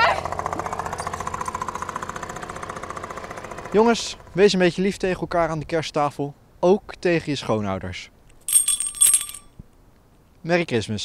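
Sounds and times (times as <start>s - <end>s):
moped engine chugging: 0.0s - 4.2s.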